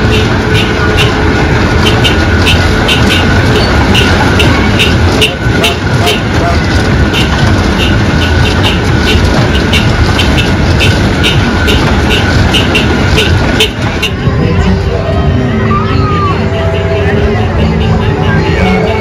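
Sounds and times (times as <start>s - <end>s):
repeating clack: 0.0s - 14.3s
kiddie ride rumbling: 0.0s - 19.0s.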